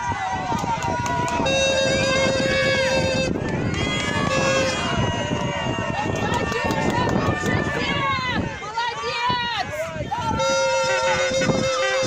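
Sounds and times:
spectators shouting and cheering: 0:00.0 - 0:12.0.

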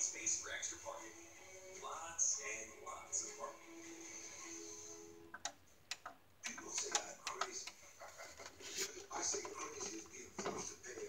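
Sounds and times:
television button clicks: 0:05.3 - 0:07.8.

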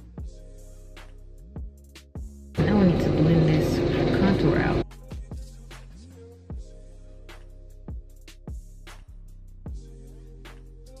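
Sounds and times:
lawn mower engine running: 0:02.6 - 0:04.8
woman speaking: 0:02.6 - 0:04.8.

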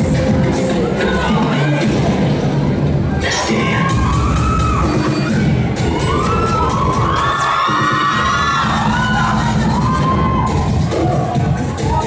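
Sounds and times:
dance-pop music: 0:00.0 - 0:12.0
audience screaming and cheering: 0:00.2 - 0:12.0.

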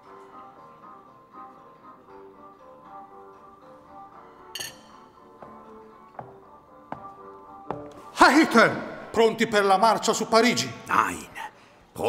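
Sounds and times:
soft slow background music: 0:00.0 - 0:12.0
spoon clinking against dish: 0:04.6 - 0:05.2.

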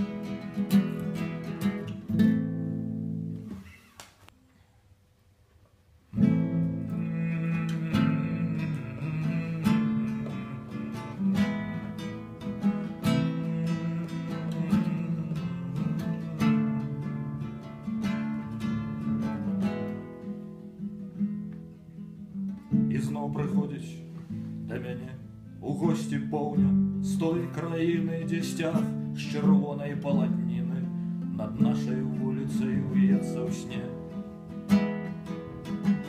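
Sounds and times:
classical guitar: 0:00.0 - 0:04.3, 0:06.0 - 0:36.0.

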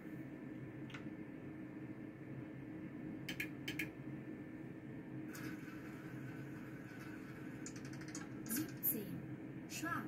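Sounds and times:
steady low hum: 0:00.0 - 0:10.0
sharp clicks: 0:03.3 - 0:04.0
roulette wheel rattling: 0:05.4 - 0:08.9.

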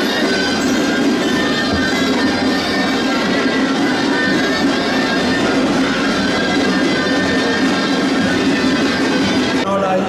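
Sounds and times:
shawms playing a street tune: 0:00.0 - 0:10.0.

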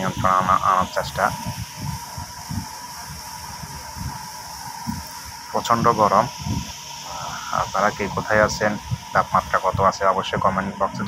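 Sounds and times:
steady hiss: 0:00.0 - 0:11.0
thin steady tone: 0:00.0 - 0:11.0
wind buffeting microphone: 0:00.0 - 0:11.0.

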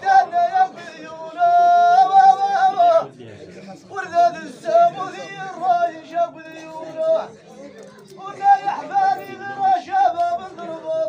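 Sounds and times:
man singing in high strained voice: 0:00.0 - 0:03.1, 0:08.2 - 0:11.0.

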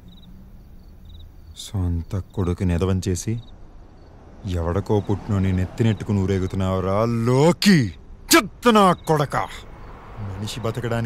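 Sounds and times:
crickets chirping: 0:00.0 - 0:11.0
man's voice: 0:04.5 - 0:09.6.

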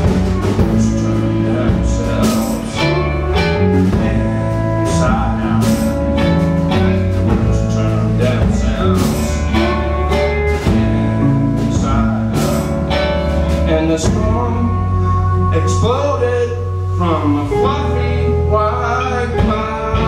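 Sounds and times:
live band playing: 0:00.0 - 0:20.0.

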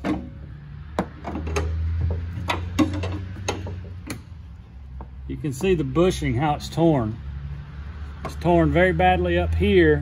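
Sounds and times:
metallic clicks and knocks: 0:01.0 - 0:04.3.

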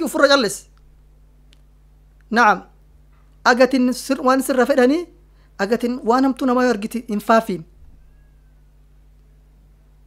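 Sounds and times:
low steady hum: 0:00.0 - 0:10.0
man speaking: 0:02.3 - 0:02.7, 0:03.5 - 0:07.7.

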